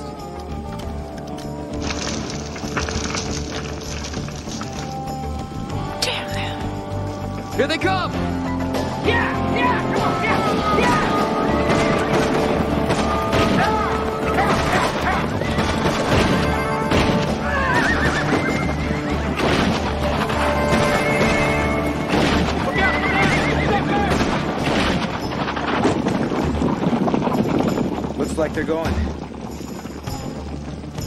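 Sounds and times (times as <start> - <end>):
dramatic film music: 0.0 - 31.0
horses galloping: 0.0 - 31.0
horses whinnying: 9.0 - 27.8.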